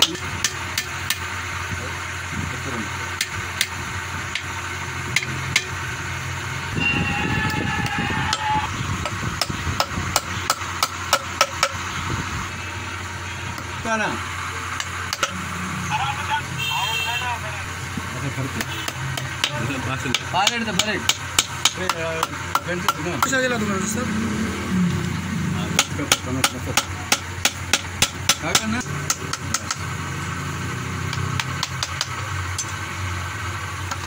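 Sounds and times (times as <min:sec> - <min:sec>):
hammer tapping wooden post: 0:07.8 - 0:11.8, 0:14.8 - 0:15.4, 0:18.6 - 0:23.4, 0:25.8 - 0:29.9, 0:31.1 - 0:32.2.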